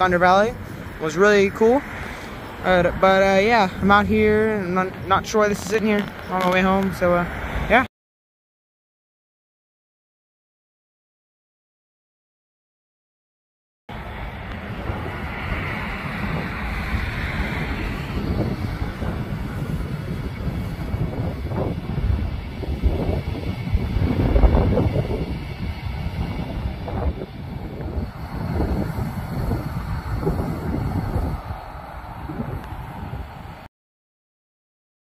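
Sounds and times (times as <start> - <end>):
wind buffeting microphone: 0.0 - 7.9, 13.9 - 33.7.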